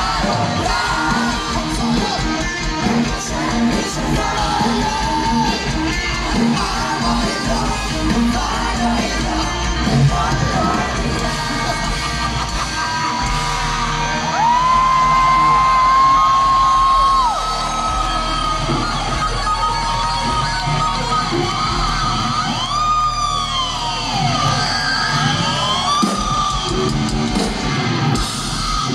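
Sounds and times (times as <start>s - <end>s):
electric guitar held high notes: 0.0s - 28.9s
live rock band: 0.0s - 28.9s.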